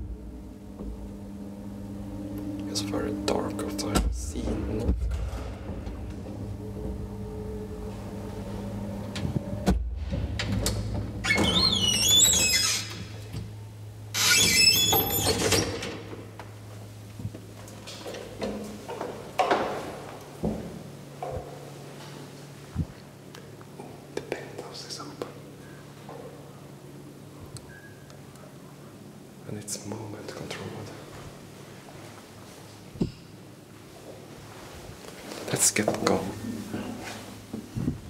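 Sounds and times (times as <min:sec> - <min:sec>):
low hum: 0:00.0 - 0:29.4
knocks and clanks: 0:03.8 - 0:07.1
metal gate scraping and squealing: 0:11.2 - 0:13.0, 0:14.1 - 0:15.8.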